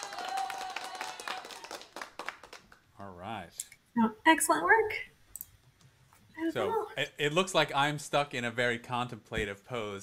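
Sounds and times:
hands clapping in applause: 0:00.0 - 0:02.9.

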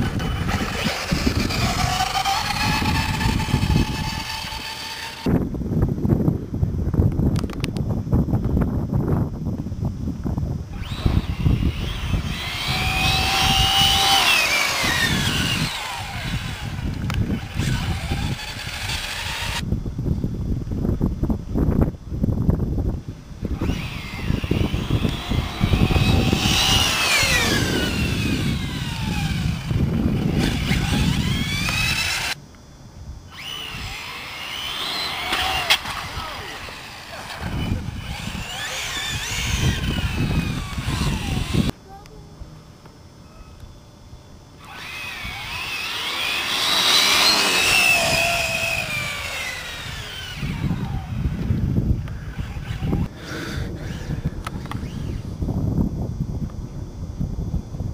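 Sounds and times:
radio-controlled car motors whining: 0:00.0 - 0:05.3, 0:10.7 - 0:19.6, 0:23.5 - 0:32.4, 0:33.3 - 0:41.7, 0:44.6 - 0:55.4
wind rumble on microphone: 0:00.0 - 0:41.8, 0:44.1 - 0:57.9.

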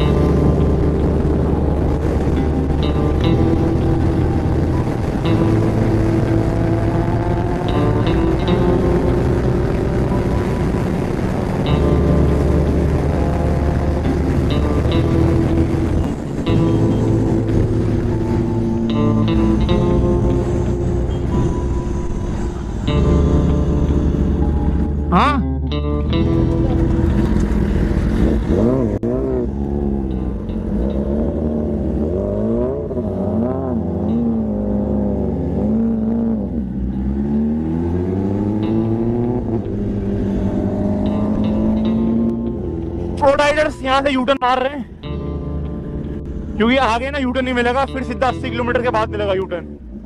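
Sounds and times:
background music: 0:00.0 - 0:50.0
motorcycle engine revving: 0:00.0 - 0:50.0
sharp rising whine: 0:00.0 - 0:50.0.

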